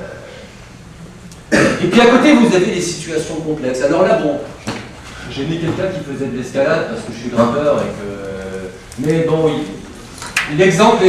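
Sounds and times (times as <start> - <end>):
man coughing into microphone: 1.5 - 2.0.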